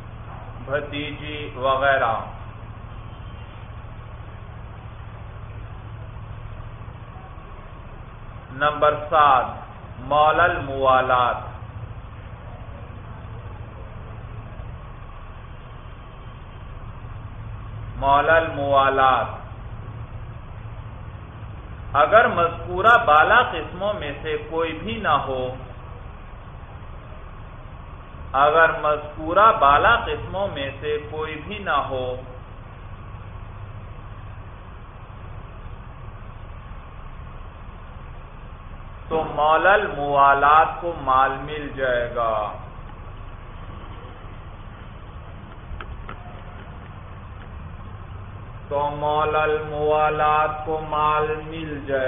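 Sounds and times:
low hum and rumble: 0.0 - 52.0.

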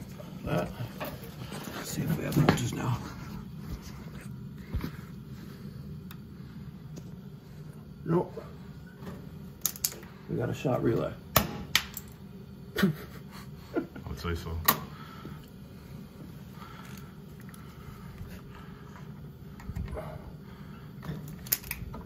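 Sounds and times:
steady low hum: 0.0 - 22.0
small sharp clicks of wiring: 9.6 - 10.0.

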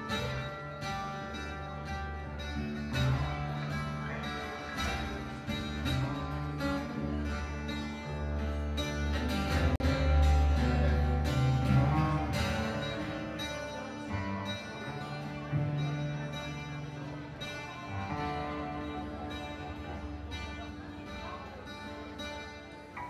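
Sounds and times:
deep bass guitar notes: 0.0 - 23.0
strummed twelve-string acoustic guitar: 0.0 - 23.0.

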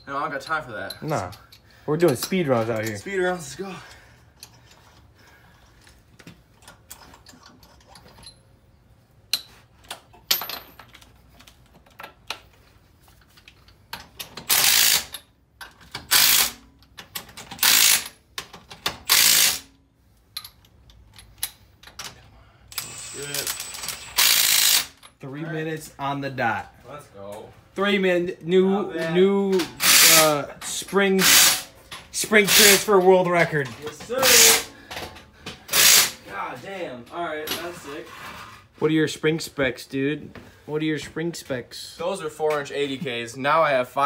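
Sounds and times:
impact wrench spinning: 14.2 - 19.7, 22.7 - 25.1, 29.8 - 30.3, 31.2 - 31.8, 34.2 - 34.7, 35.7 - 36.2.

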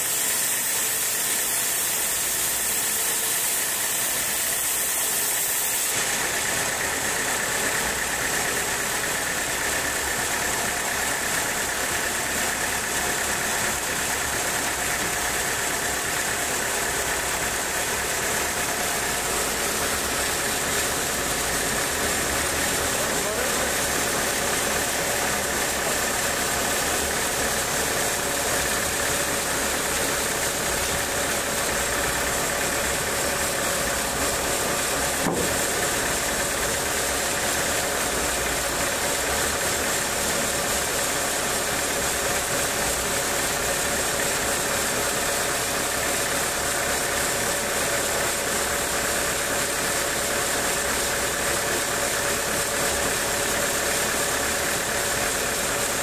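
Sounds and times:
sawmill engine running: 0.0 - 56.0.

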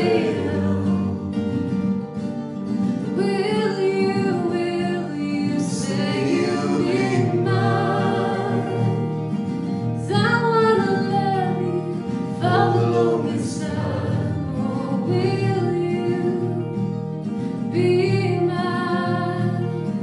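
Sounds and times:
woman singing: 0.0 - 1.1, 3.1 - 9.0, 10.0 - 16.8, 17.6 - 20.0
acoustic guitars strummed: 0.0 - 20.0.

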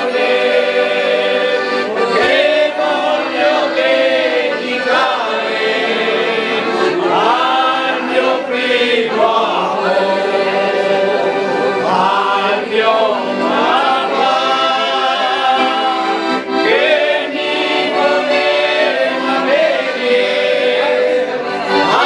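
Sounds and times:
group singing in chorus: 0.0 - 22.0
piano accordion: 0.0 - 22.0.

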